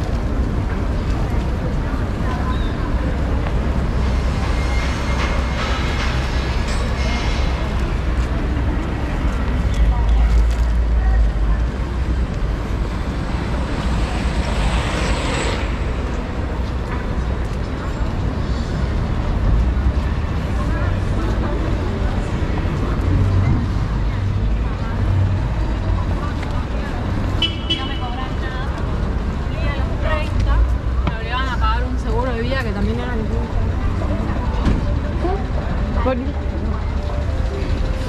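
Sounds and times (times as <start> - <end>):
street traffic rumble: 0.0 - 38.0.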